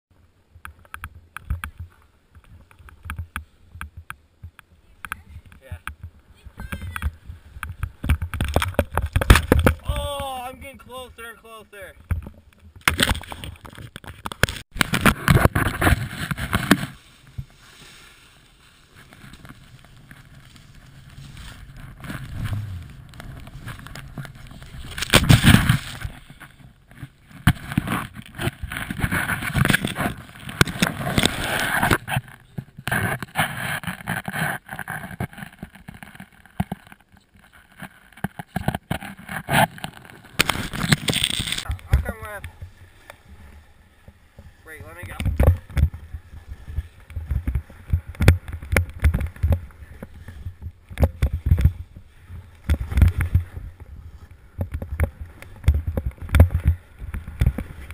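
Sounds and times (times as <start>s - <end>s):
snowboard scraping through snow: 15.1s - 26.4s, 27.9s - 32.3s
wind over microphone: 19.1s - 34.0s, 39.4s - 57.9s.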